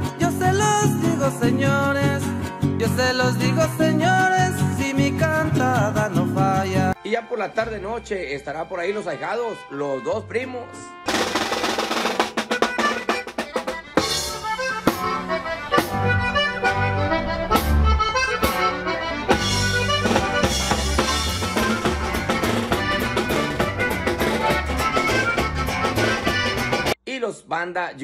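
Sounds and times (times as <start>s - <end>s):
accordion: 0.0s - 27.0s
drum kit beat: 11.1s - 27.0s.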